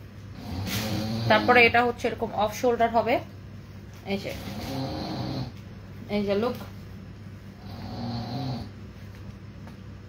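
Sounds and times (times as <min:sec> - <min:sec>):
faint hummed vocal sound: 0:00.0 - 0:09.8
steady low room hum: 0:00.0 - 0:10.0.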